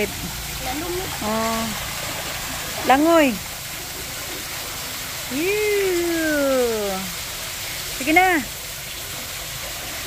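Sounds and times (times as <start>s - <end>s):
water splashing: 0.0s - 10.0s
waterfall pouring into pool: 0.0s - 10.0s
person calling out: 5.3s - 7.1s.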